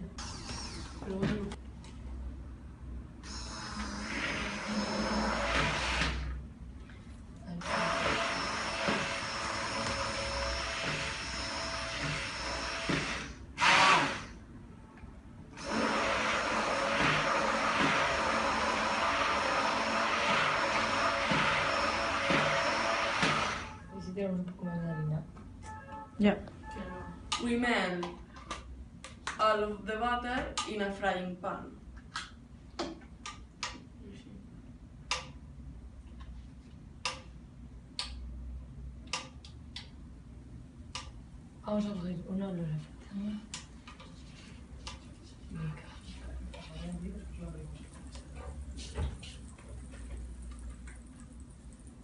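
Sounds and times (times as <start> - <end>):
stick blender motor running: 3.3 - 6.3, 7.6 - 14.4, 15.6 - 23.8.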